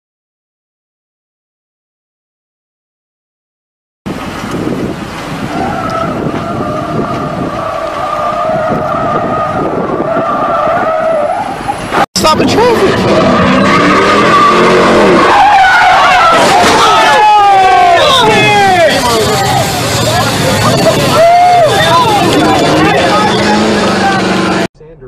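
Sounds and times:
car engine revving: 4.1 - 24.7
tyres squealing: 5.4 - 24.7
voices: 15.2 - 25.0.

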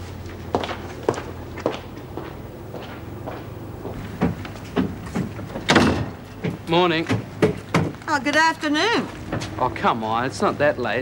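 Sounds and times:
sharp footsteps: 0.0 - 8.0
low steady hum: 0.0 - 11.0.

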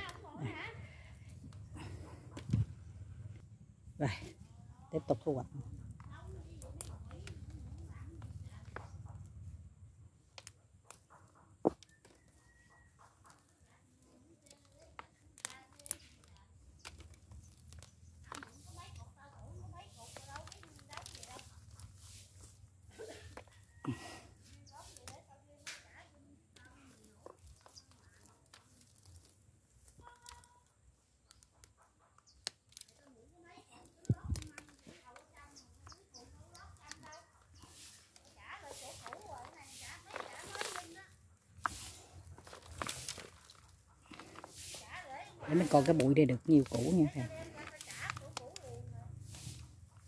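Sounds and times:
soil crumbling: 14.2 - 50.0
roots tearing and rustling: 33.7 - 50.0.

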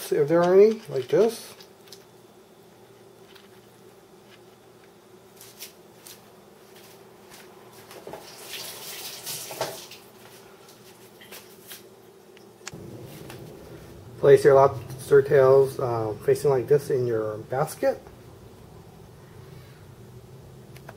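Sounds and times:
low steady hum: 0.0 - 8.0, 10.0 - 20.9
lobster shells cracking: 0.2 - 2.2.

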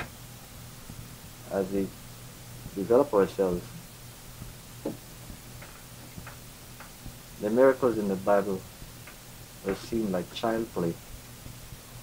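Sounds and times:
recording hum and hiss: 0.0 - 12.0.

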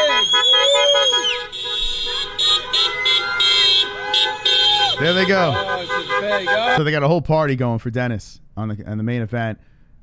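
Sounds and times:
car horns honking: 0.0 - 7.0.

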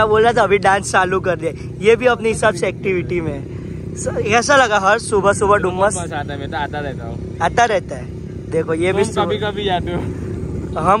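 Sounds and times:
low rumble of engines: 0.0 - 11.0
man speaking: 0.0 - 11.0.

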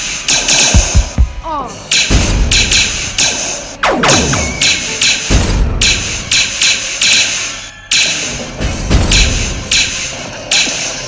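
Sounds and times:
blaster shot sound effects: 3.8 - 5.1.

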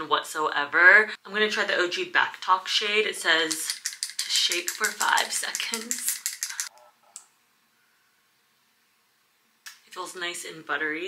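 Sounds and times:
tube rattling when shaken: 3.2 - 6.7.

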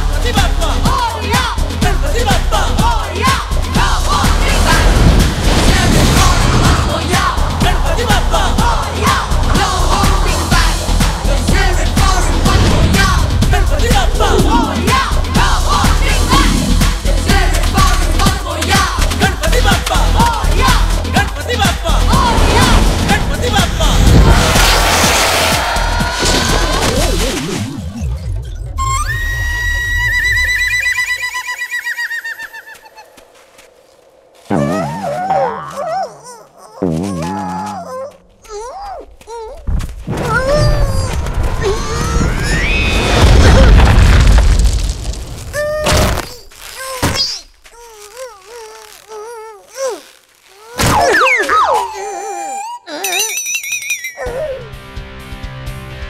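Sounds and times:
cartoon soundtrack music: 0.0 - 33.2, 34.4 - 39.5, 50.8 - 53.4, 54.2 - 56.0
comic sound effects: 22.2 - 31.5, 34.5 - 36.2, 36.8 - 38.1, 50.8 - 53.4
high warbling whistle tone: 28.7 - 32.7.

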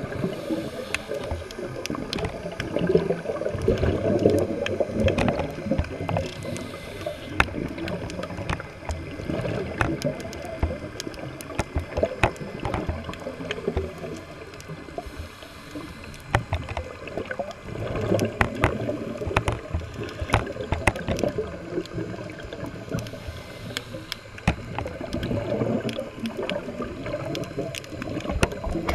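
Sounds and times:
sharp underwater clicks: 0.0 - 28.9
underwater rumble of moving water: 0.0 - 28.9.

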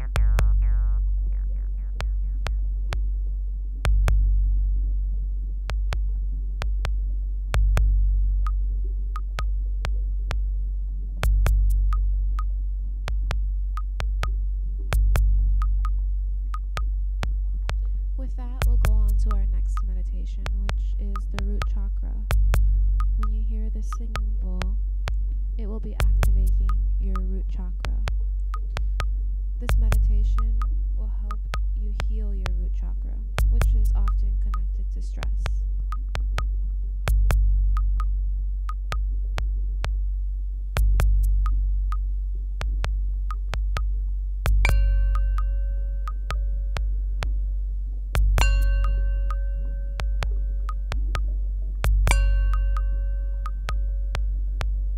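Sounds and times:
deep synthesizer drone: 0.0 - 54.9
steady pitched tone: 0.0 - 54.9
short high ping: 44.7 - 46.0, 48.4 - 49.9, 52.1 - 53.3
held mid-pitched synth tone: 44.7 - 46.8, 48.4 - 54.4.

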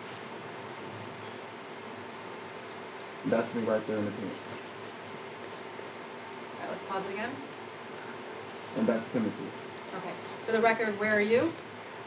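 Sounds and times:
faint low hum: 0.0 - 12.0
steady low hiss: 0.0 - 12.0.

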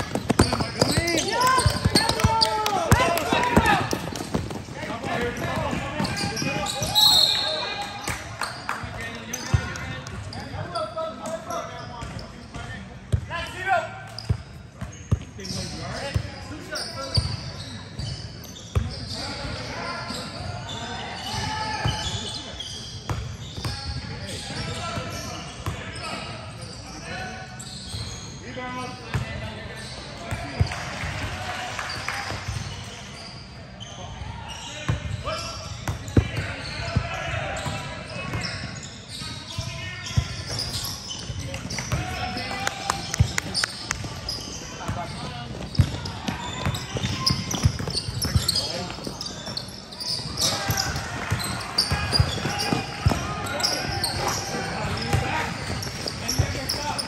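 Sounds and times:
basketball bouncing on gym court: 0.0 - 7.0, 43.0 - 49.6, 50.4 - 57.0
referee whistle blast: 6.8 - 7.7.

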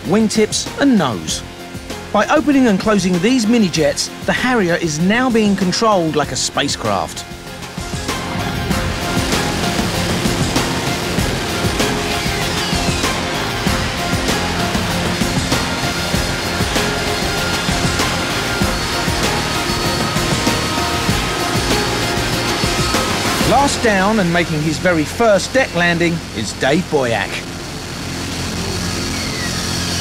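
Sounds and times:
background music: 0.0 - 30.0
jet engine noise: 0.0 - 30.0
falling jet whine: 1.2 - 30.0.

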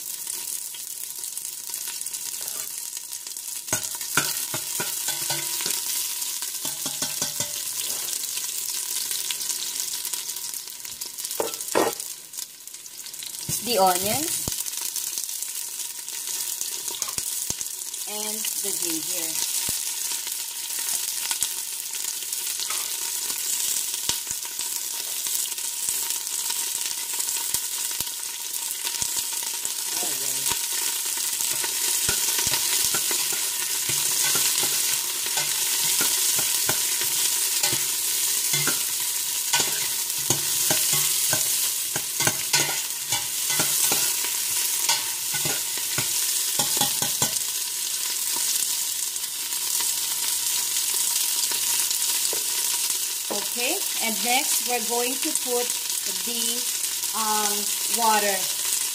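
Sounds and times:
garlic and onion sizzling in oil: 0.0 - 58.9
utensil scraping and tapping pot: 3.7 - 5.8, 6.6 - 8.0, 31.5 - 38.9, 39.5 - 44.3, 44.9 - 47.4.

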